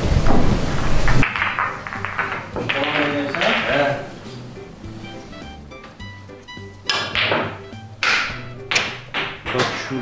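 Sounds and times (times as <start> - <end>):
background music: 1.2 - 10.0.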